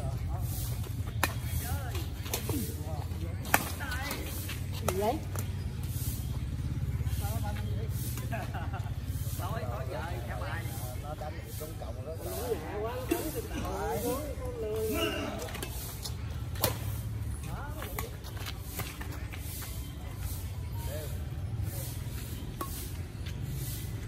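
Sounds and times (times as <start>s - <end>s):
low rumble of city traffic: 0.0s - 24.0s
rackets hitting shuttlecock: 0.8s - 2.8s, 3.4s - 6.2s, 15.4s - 19.1s, 22.3s - 23.0s
men calling out: 12.4s - 15.6s.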